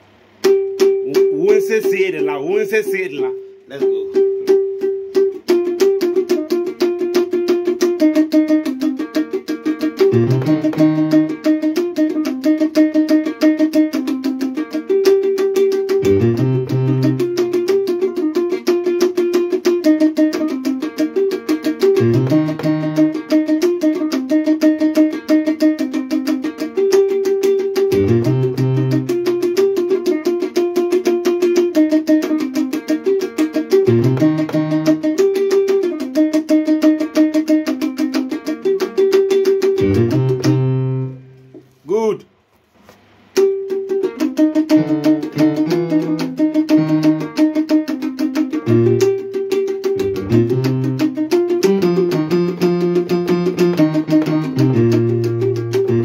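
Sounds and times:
electronic keyboard notes: 3.9 - 38.1, 38.7 - 41.3, 43.4 - 56.0
low bass figure: 39.8 - 42.2, 50.0 - 51.0.

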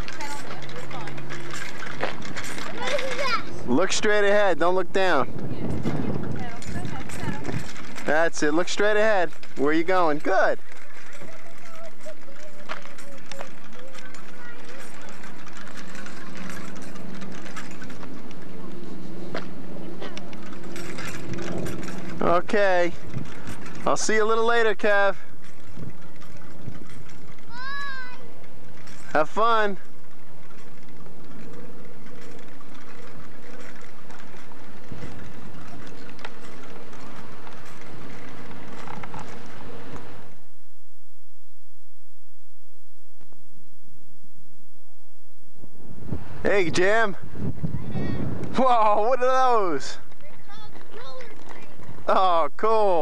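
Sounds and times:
light clicks and rattles: 0.0 - 40.3, 46.8 - 53.0
bicycle rolling over asphalt: 0.0 - 42.4, 44.4 - 53.0
steady low hum: 29.8 - 48.6.

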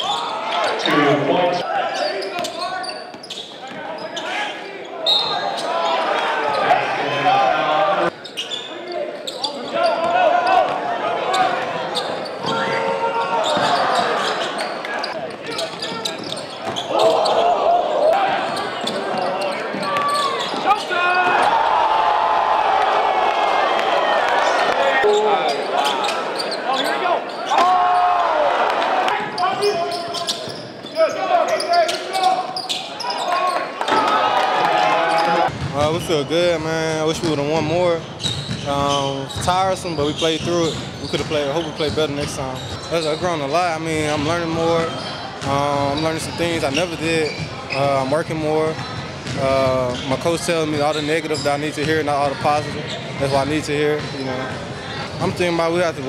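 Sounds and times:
voices and shouts echoing: 0.0 - 56.0.

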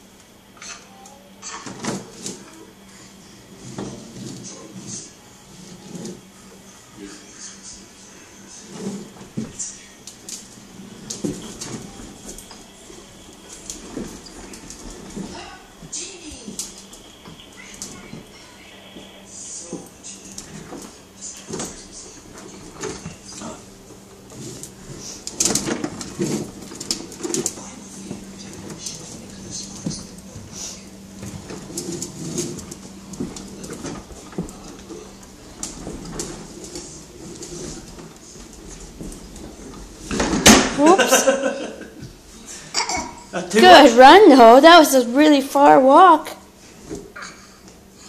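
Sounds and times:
toddler babbling: 42.7 - 43.3.

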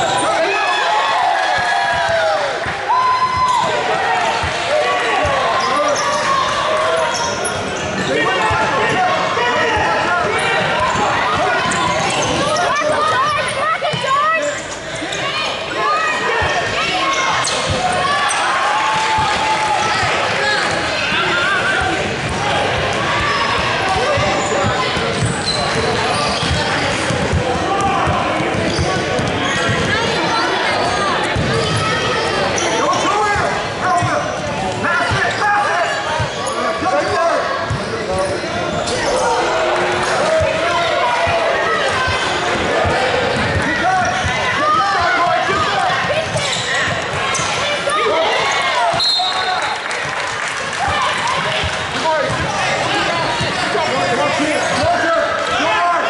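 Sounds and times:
many voices calling out: 0.0 - 56.0.

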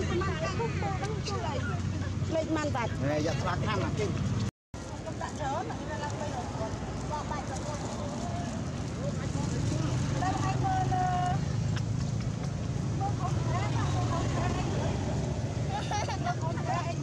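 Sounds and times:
people talking: 4.9 - 11.4, 12.9 - 15.0.

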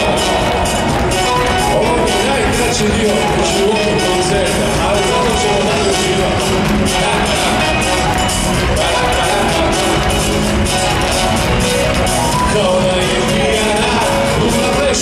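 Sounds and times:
live pop band playing: 0.0 - 15.0.

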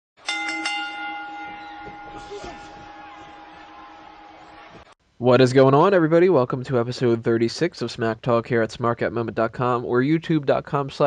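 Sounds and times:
bell ringing: 0.2 - 4.9.

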